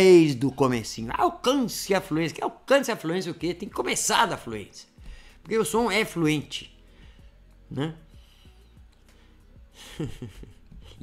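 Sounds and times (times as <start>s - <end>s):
man speaking: 0.0s - 6.7s, 7.7s - 8.1s
faint background music: 0.0s - 11.0s.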